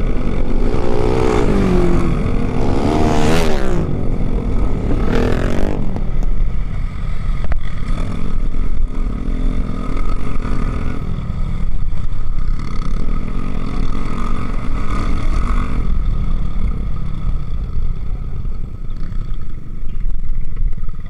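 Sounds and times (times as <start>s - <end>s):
motorcycle engine running: 0.0s - 21.0s.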